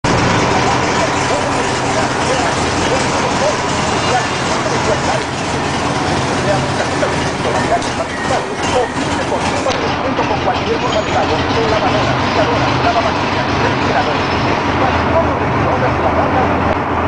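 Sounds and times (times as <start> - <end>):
motorcycle engine idling: 0.0 - 15.4
indistinct voices: 0.0 - 17.0.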